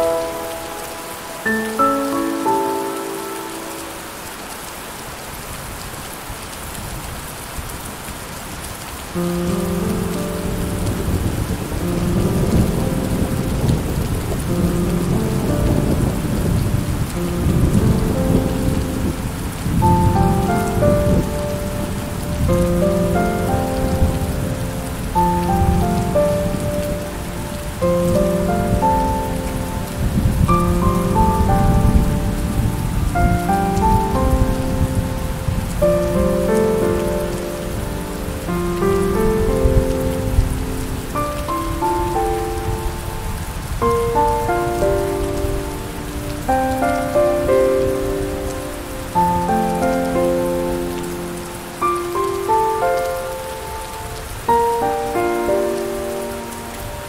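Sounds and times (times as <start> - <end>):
soft slow melody: 0.0 - 5.2, 8.9 - 57.0
steady rain: 0.0 - 57.0.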